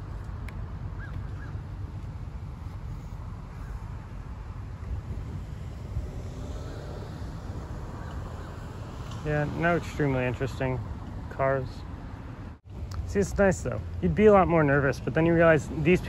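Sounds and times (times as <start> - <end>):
wind buffeting microphone: 0.0 - 9.8
road traffic rumble: 0.0 - 16.0.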